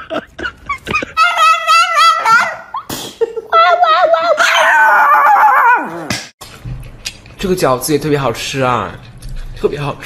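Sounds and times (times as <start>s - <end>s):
dog howling: 1.2s - 2.8s, 3.6s - 6.1s.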